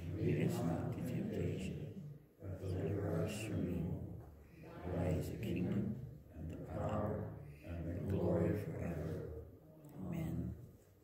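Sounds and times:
man speaking in low voice: 0.0s - 10.8s.

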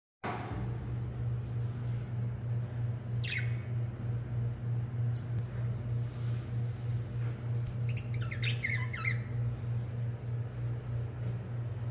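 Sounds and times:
steady low hum: 0.2s - 11.9s
budgerigar chirp: 3.2s - 3.6s, 7.9s - 9.4s.

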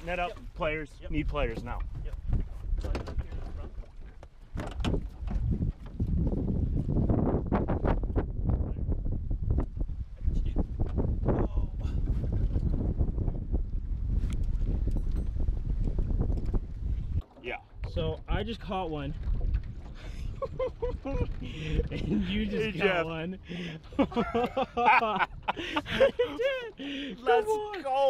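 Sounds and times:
wind rumbling on microphone: 0.0s - 28.0s
knocks against boat: 2.3s - 3.8s, 4.5s - 5.9s
water splashing: 17.2s - 24.3s.

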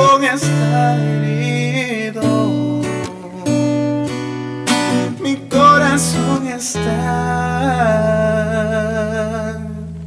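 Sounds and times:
man singing a long note: 0.0s - 3.8s, 5.1s - 10.0s
acoustic guitar chord ringing: 0.0s - 10.0s.

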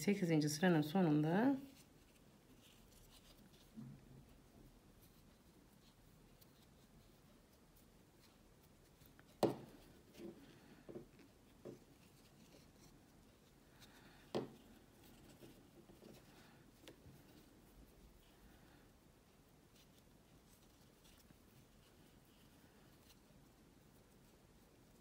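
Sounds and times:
crochet hook drawing yarn: 1.6s - 25.0s.

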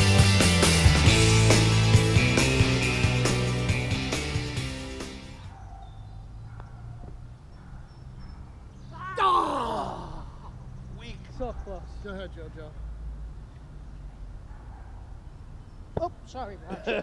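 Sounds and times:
rock music: 0.0s - 5.5s.

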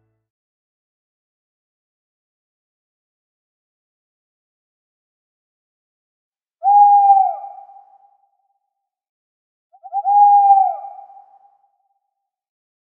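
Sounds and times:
owl hooting: 6.6s - 8.1s, 9.8s - 11.5s.

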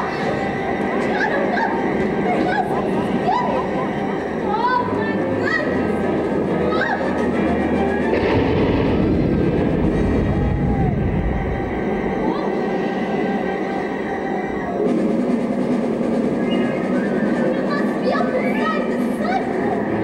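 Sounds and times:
orchestral music: 0.0s - 20.0s
rushing storm noise: 7.9s - 14.2s.

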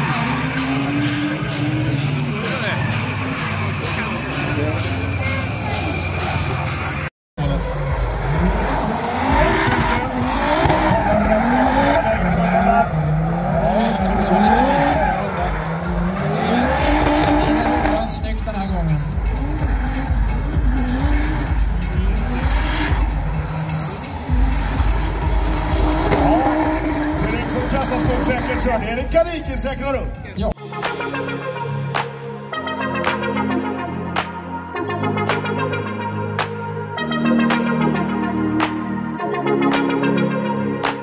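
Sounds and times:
car engine revving: 0.0s - 30.5s.

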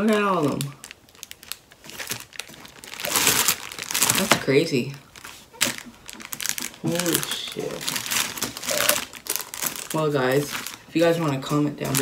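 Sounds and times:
plastic packets crinkling: 0.0s - 12.0s.

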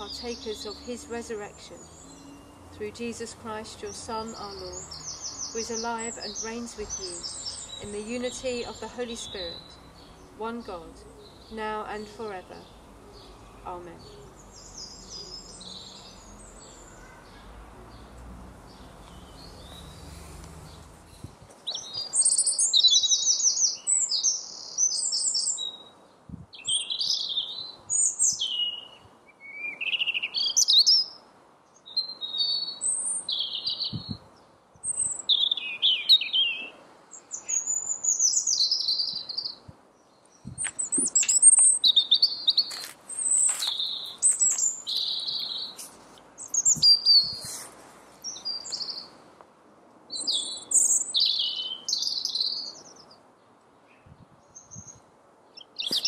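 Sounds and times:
faint steady background noise: 0.0s - 56.0s
songbird chirping: 0.0s - 56.0s.

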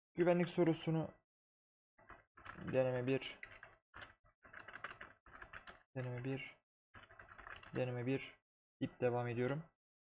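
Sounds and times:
computer keyboard typing: 2.0s - 6.4s, 7.0s - 8.0s.

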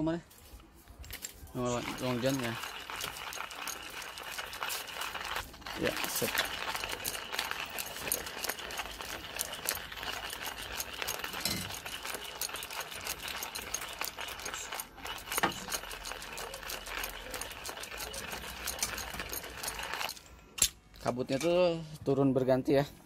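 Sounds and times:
hand coffee grinder crunching: 1.1s - 20.2s.

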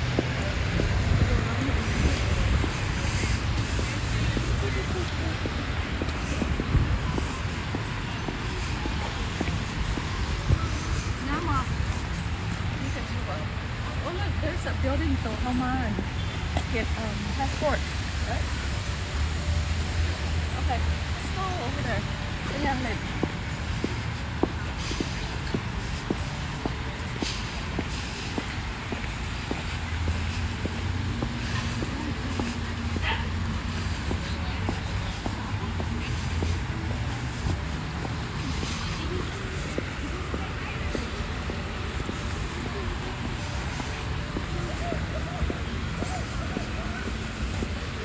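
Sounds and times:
faint footsteps on pavement: 0.0s - 48.0s.

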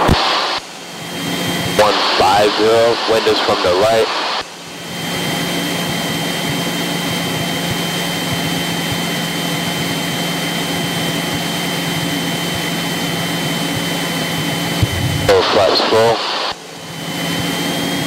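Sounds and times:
high-pitched whine: 0.0s - 18.0s
propeller airplane engine droning: 0.0s - 18.0s.

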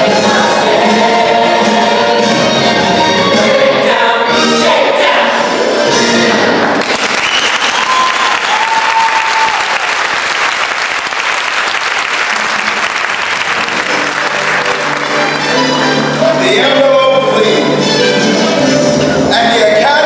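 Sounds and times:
audience applause: 6.7s - 16.2s.

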